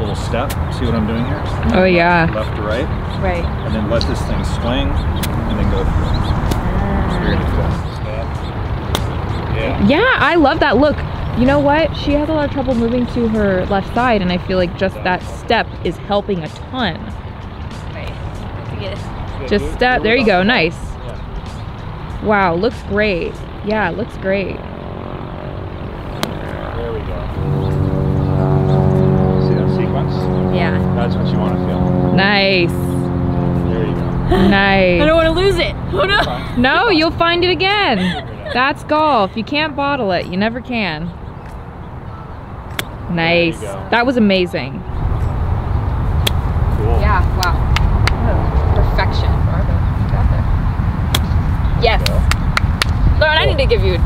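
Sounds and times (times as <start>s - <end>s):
faint voices: 0.0s - 8.4s, 9.4s - 17.1s, 26.3s - 41.1s, 43.1s - 44.8s
engine drone: 0.0s - 54.0s
wind buffeting microphone: 0.0s - 54.0s
golf club striking ball: 8.8s - 9.4s, 26.1s - 26.6s, 42.7s - 43.2s, 46.2s - 46.4s, 51.1s - 51.4s.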